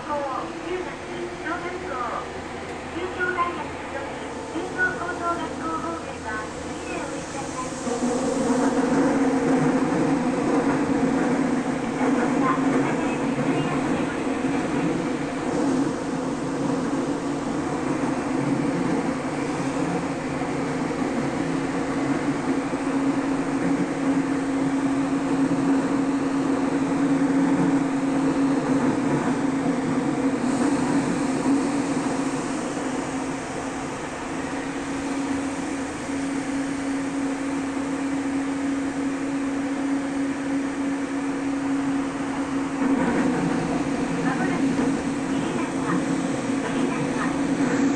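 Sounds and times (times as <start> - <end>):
train hum: 0.0 - 47.9
train wheels rumbling on rail: 0.0 - 47.9.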